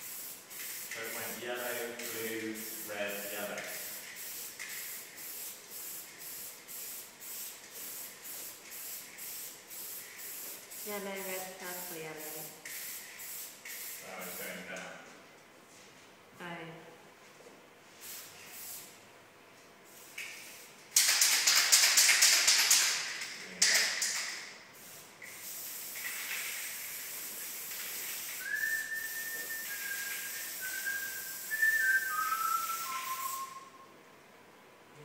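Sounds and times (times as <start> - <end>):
aerosol spray can hissing: 2.0 - 14.6, 24.8 - 33.5.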